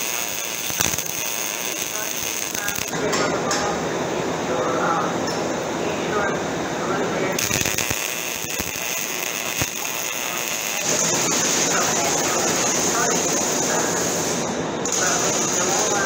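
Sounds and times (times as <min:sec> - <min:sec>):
welding arc crackling: 0:00.0 - 0:03.0, 0:07.3 - 0:16.0
steady noise with high whine: 0:00.0 - 0:16.0.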